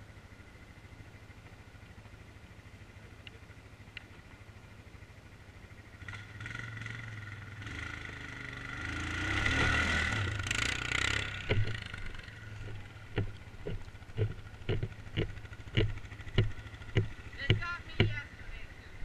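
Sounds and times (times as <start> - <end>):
atv engine idling and revving: 0.0 - 19.0
sharp clicks or knocks: 11.4 - 18.2.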